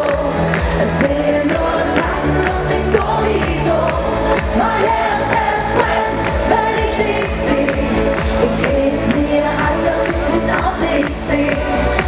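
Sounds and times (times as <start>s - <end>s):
upbeat pop music: 0.0s - 12.0s
woman singing into microphone: 0.0s - 12.0s.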